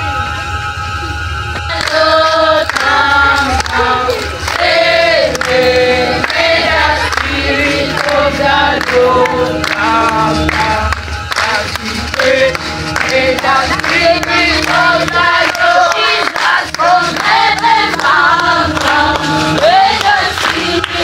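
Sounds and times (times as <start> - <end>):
sustained bass notes: 0.0 - 21.0
choir singing: 1.7 - 21.0.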